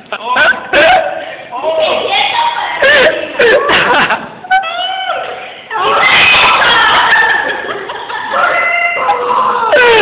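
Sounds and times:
person squealing: 8.5 - 10.0.

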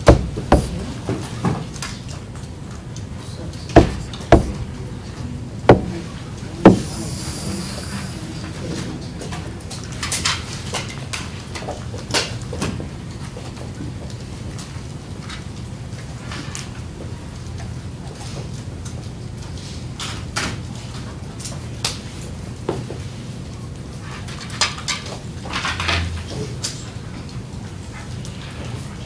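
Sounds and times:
steady low hum: 0.0 - 1.4, 2.2 - 10.4.

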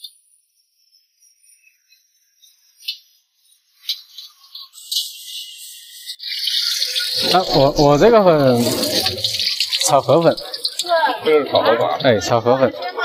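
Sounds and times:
rice sizzling: 6.3 - 11.6.

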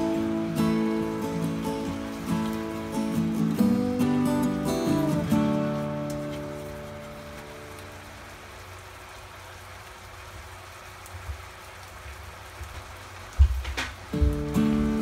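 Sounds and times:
strummed guitar music: 0.0 - 8.4, 14.1 - 15.0.

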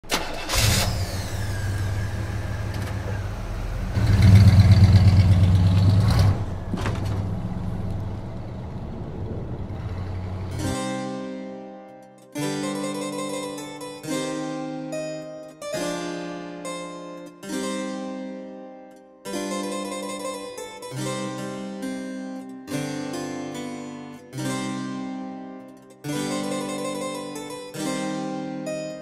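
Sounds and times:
car engine starting and revving: 0.1 - 10.8
harpsichord music: 7.6 - 29.0.

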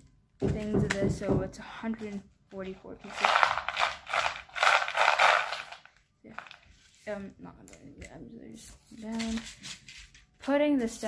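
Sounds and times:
packaging handling sounds: 2.6 - 7.2
crystal stones rattling: 3.0 - 6.6.

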